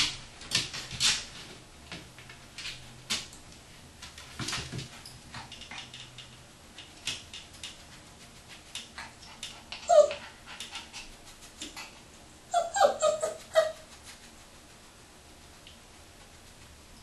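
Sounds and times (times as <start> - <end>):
puppy whimpering and yipping: 9.8 - 10.4, 12.5 - 13.9.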